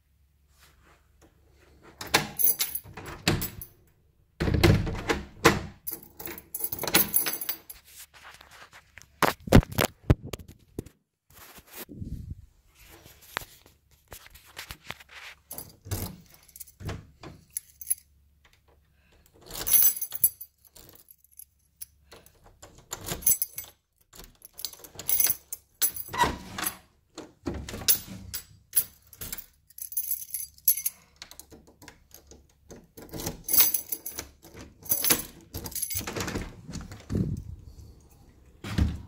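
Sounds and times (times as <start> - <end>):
keys jangling in a lock: 2.0 - 3.8, 5.8 - 7.8, 15.5 - 26.9, 27.6 - 37.5.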